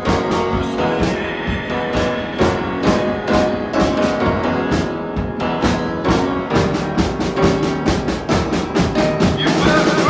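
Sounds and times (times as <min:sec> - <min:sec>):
drum kit fast beat: 0:00.0 - 0:10.0
piano chords: 0:00.0 - 0:10.0.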